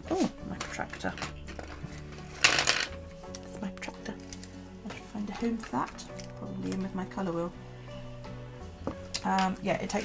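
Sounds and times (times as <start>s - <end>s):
faint background music: 0.0s - 10.0s
small objects clattering on desk: 0.6s - 3.0s.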